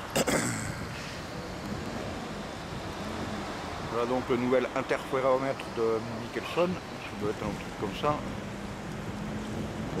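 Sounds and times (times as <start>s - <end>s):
wind on microphone: 0.0s - 5.1s, 6.8s - 10.0s
city street background noise: 0.0s - 10.0s.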